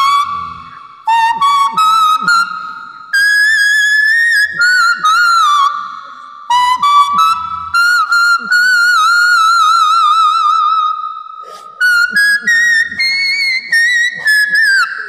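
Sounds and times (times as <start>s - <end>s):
toy whistle-flute melody: 0.0s - 15.0s.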